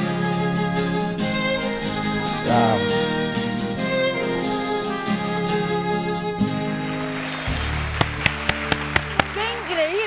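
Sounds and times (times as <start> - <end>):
person speaking: 2.5 - 2.9
sharp percussive hits: 6.9 - 9.7.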